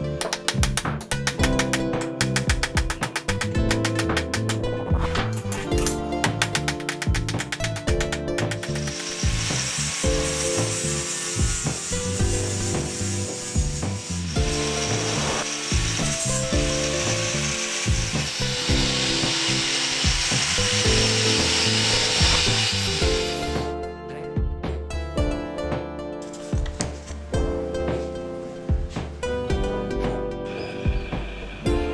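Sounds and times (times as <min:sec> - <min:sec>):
grinder disc grinding steel: 0:05.2 - 0:23.6
rapid clicks: 0:06.3 - 0:09.3.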